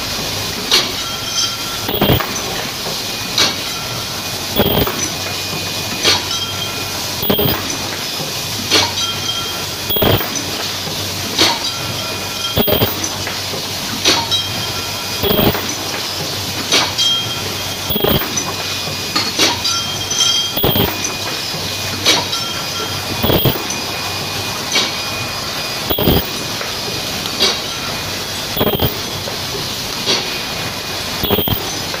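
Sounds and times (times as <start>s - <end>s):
continuous mechanical hiss: 0.0s - 32.0s
machine clanking: 0.6s - 32.0s.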